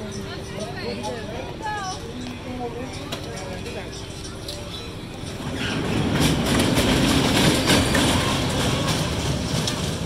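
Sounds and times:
roller coaster cars rolling on track: 0:03.0 - 0:10.0.

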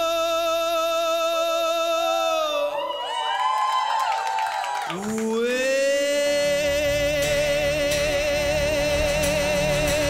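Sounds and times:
people whooping and cheering: 0:01.8 - 0:05.4
lead vocal holding a note: 0:04.9 - 0:10.0
soul-pop band playing: 0:06.5 - 0:10.0.

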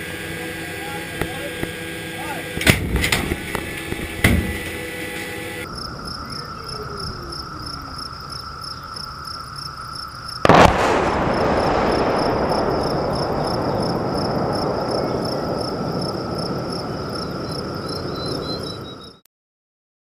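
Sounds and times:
sharp metallic bangs: 0:00.0 - 0:05.6, 0:10.5 - 0:16.6
insects chirring: 0:00.0 - 0:19.2
artillery shell explosion boom: 0:02.6 - 0:04.7, 0:10.4 - 0:17.0.

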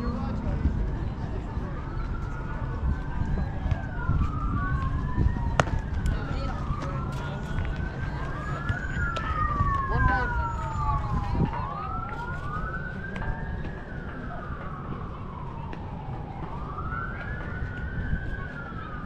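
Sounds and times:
emergency vehicle siren wailing: 0:00.0 - 0:19.0.

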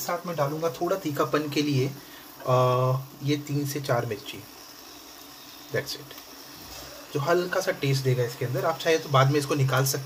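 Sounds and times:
gravy simmering and sizzling: 0:00.0 - 0:10.0.

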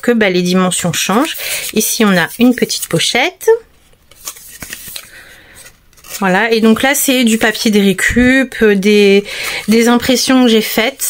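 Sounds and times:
paper pages rustling: 0:01.0 - 0:03.0, 0:03.7 - 0:08.0, 0:08.7 - 0:11.0.

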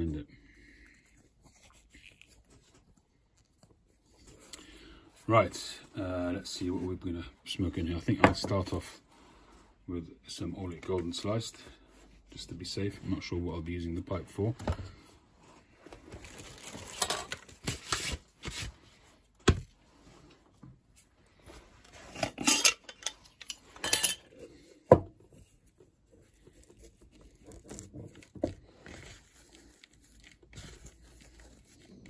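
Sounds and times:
tobacco rustling by hand: 0:00.0 - 0:07.0, 0:10.6 - 0:32.0.

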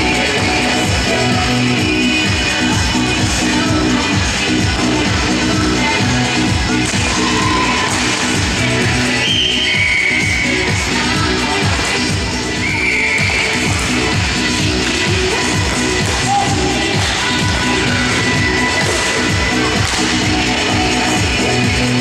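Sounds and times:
pop music with steady beat: 0:00.0 - 0:22.0.

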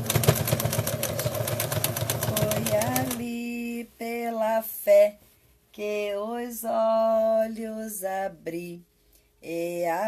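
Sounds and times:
sewing machine needle clatter: 0:00.0 - 0:03.2.

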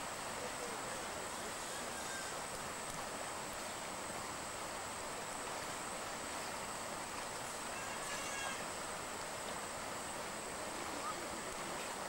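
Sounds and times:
river water rushing through weir: 0:00.0 - 0:12.0.

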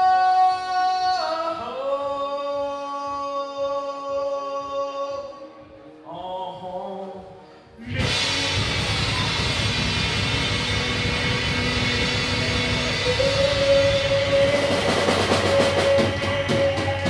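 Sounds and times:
guitar holding long note: 0:07.8 - 0:17.0
drum beats: 0:07.9 - 0:17.0
live rock band playing: 0:07.9 - 0:17.0.

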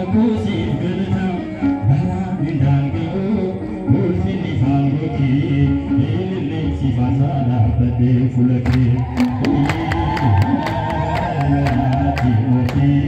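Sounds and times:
hymn being sung: 0:00.0 - 0:13.0
musical accompaniment: 0:00.0 - 0:13.0.

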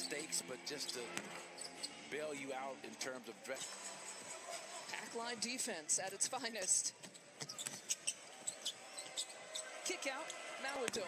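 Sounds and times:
low arena background noise: 0:00.0 - 0:11.0.

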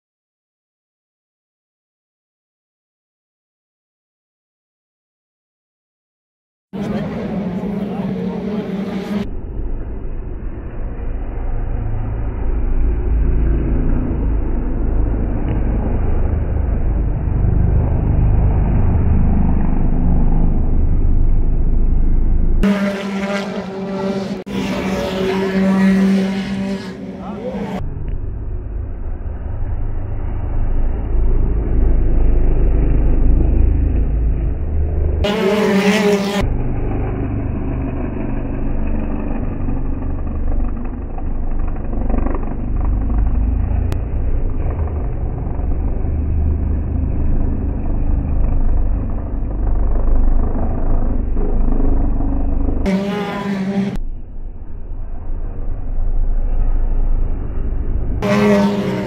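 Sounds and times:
racing car engines passing: 0:06.8 - 0:59.0
slowed low muffled rumble: 0:09.2 - 0:22.6, 0:27.8 - 0:35.2, 0:36.4 - 0:52.9, 0:54.0 - 0:58.2.

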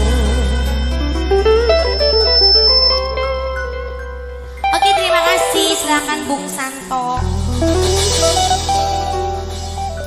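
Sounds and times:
steady low bass: 0:00.0 - 0:06.1, 0:07.2 - 0:10.0
live band playing: 0:00.0 - 0:10.0.

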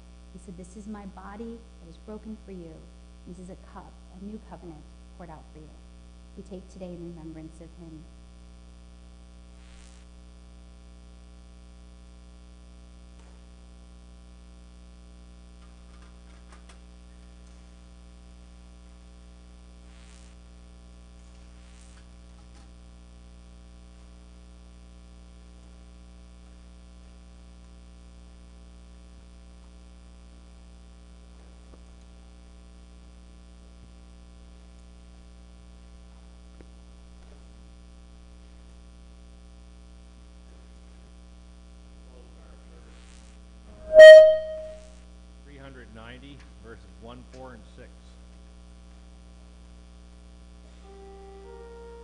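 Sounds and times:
electrical mains hum: 0:00.0 - 0:52.0.

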